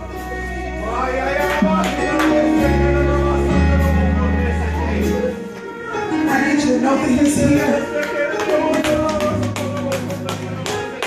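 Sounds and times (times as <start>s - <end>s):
church worship music: 0.0s - 11.0s.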